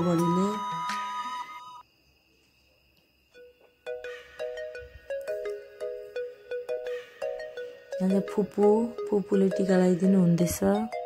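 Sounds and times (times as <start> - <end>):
simple electronic tune: 0.0 - 1.8, 3.9 - 11.0.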